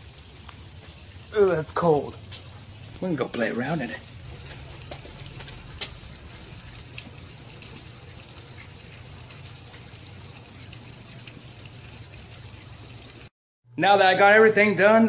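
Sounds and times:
steady rain falling: 0.0s - 11.9s
raindrop tapping close by: 4.0s - 8.8s.

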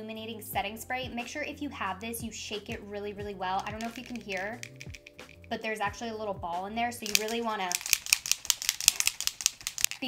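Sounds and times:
mixing ball rattling in bottle: 3.4s - 5.6s, 7.0s - 10.0s.

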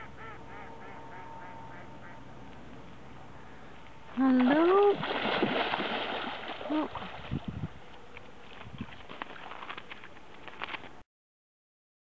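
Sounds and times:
seal splashing in water: 4.3s - 7.6s.

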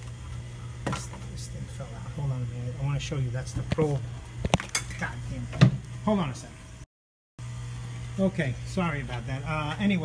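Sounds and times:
compressor humming: 0.0s - 10.0s.

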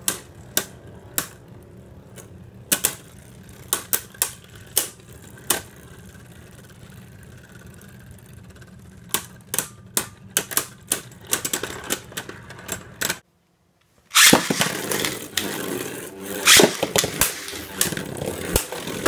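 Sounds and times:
spinning tops clacking together: 14.1s - 19.0s
spinning tops whirring: 14.1s - 19.0s.

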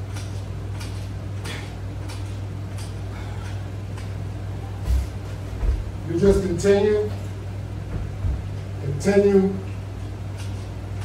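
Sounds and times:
steady low hum: 0.0s - 11.0s
dull thumps on workout bench: 7.9s - 8.6s.

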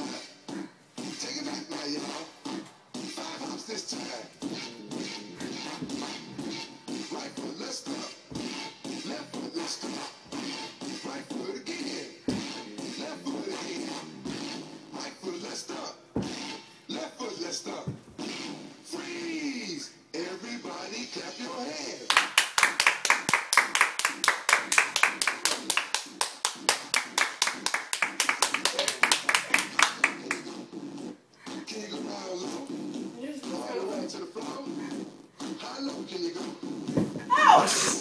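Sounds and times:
dance music: 0.0s - 38.0s
rapid hand clapping: 22.1s - 30.5s.

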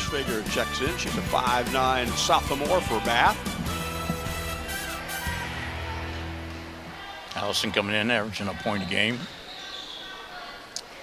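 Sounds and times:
murmur of background noise: 3.4s - 11.0s.

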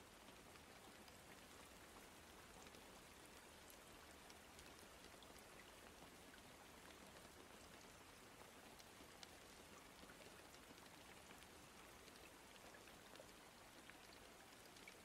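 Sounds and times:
steady rain hiss: 0.0s - 15.0s.

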